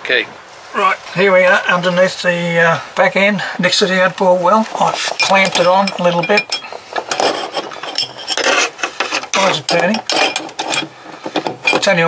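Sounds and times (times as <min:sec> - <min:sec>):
small metal parts clinking: 0:05.1 - 0:12.0.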